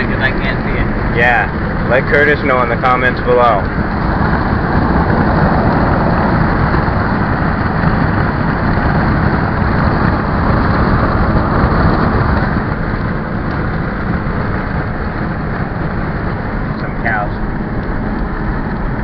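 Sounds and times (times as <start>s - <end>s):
low engine rumble: 0.0s - 19.0s
tyre and wind noise: 0.0s - 19.0s.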